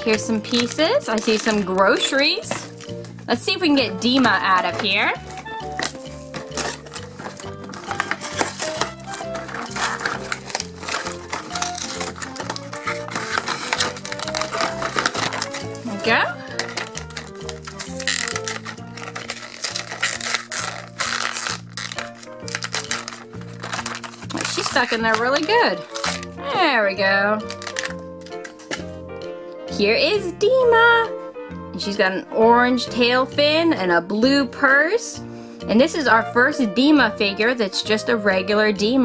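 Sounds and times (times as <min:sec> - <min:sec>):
packaging crinkling and scraping: 0:00.0 - 0:26.6, 0:27.4 - 0:29.2.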